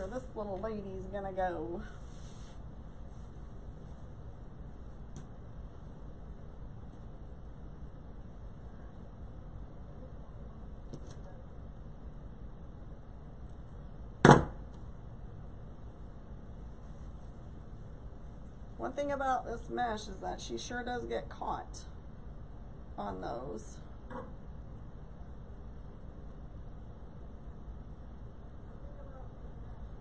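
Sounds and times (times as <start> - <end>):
steady low hum: 0.0 - 30.0
sharp knock: 14.2 - 14.6.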